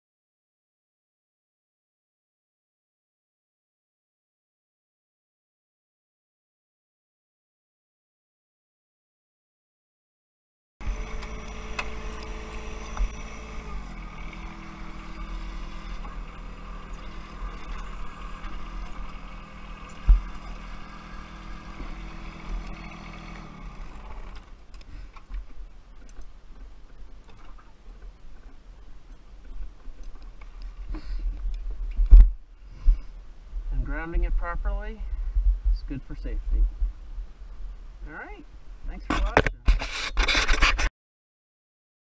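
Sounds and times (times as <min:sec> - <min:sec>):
tractor diesel engine running: 0:10.8 - 0:31.7.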